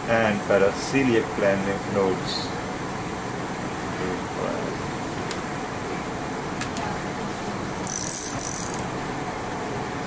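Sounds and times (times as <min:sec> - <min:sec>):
fan-like hum and hiss: 0:00.0 - 0:10.0.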